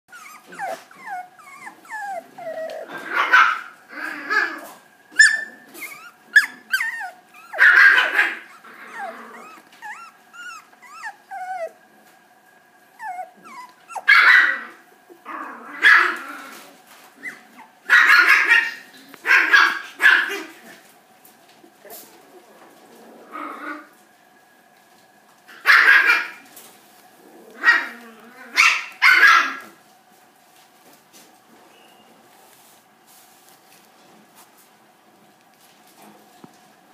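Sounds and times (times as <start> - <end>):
puppy barking and yipping: 0.1 - 4.5, 5.2 - 11.7, 13.0 - 14.8, 17.2 - 20.6, 25.6 - 26.4, 27.6 - 29.7
puppy whining: 0.1 - 11.9, 12.8 - 19.0.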